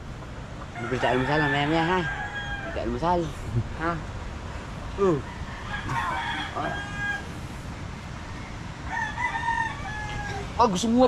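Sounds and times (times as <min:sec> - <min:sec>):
rooster crowing: 0:00.7 - 0:03.0, 0:05.1 - 0:07.4, 0:08.3 - 0:10.6.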